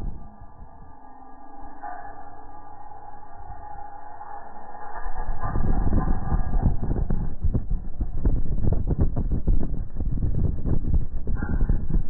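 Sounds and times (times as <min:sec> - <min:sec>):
bass music through subwoofers: 0:00.0 - 0:01.6, 0:04.8 - 0:12.0
soft sustained tones: 0:00.0 - 0:12.0.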